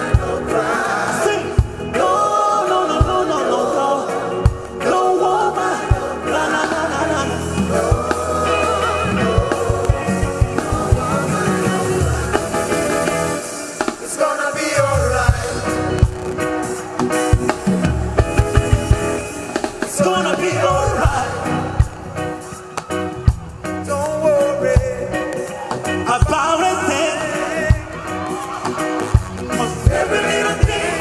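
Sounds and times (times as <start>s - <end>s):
group singing together: 0.0s - 22.8s, 25.3s - 31.0s
live rock band: 0.0s - 31.0s.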